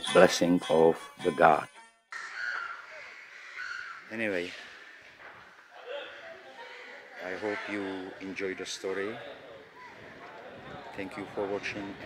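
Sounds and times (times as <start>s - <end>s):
bird calling: 2.2s - 10.5s
faint background noise: 2.2s - 12.0s.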